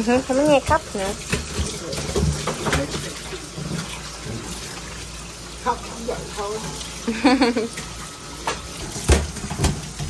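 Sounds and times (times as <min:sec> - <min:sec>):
faucet water running into sink: 0:00.0 - 0:10.0.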